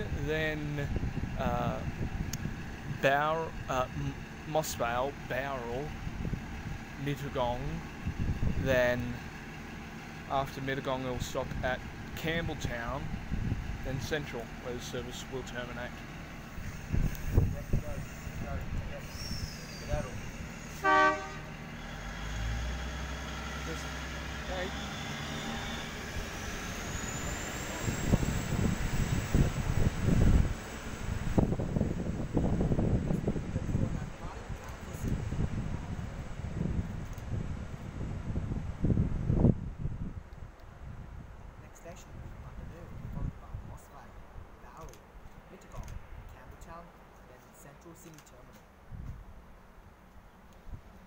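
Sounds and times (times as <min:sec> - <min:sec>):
rising engine whine: 0:00.0 - 0:43.7
diesel engines rumbling: 0:00.0 - 0:51.0
train horn toot: 0:20.7 - 0:21.6.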